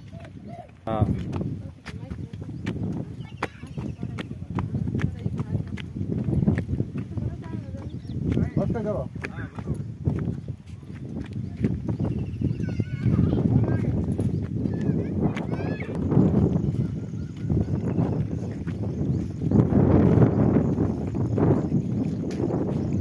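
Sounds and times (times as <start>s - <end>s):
people's voices: 0.0s - 22.9s
wind buffeting microphone: 0.0s - 23.0s.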